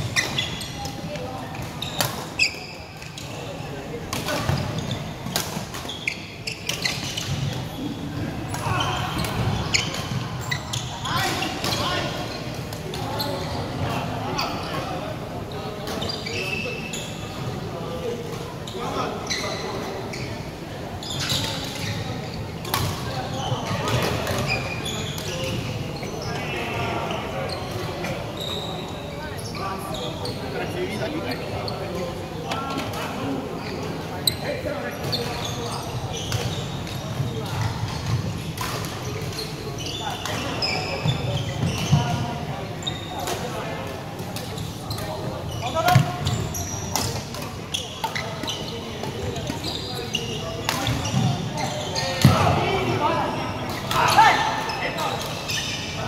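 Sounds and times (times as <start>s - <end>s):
shoes squeaking on wooden floor: 0.0s - 1.1s, 5.8s - 8.0s, 8.6s - 12.5s, 23.1s - 31.9s, 33.6s - 38.4s, 39.0s - 43.7s, 44.5s - 56.0s.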